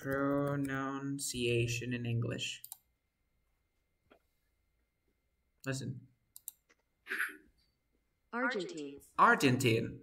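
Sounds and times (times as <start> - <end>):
computer mouse clicking: 2.6 - 2.9, 5.6 - 6.8.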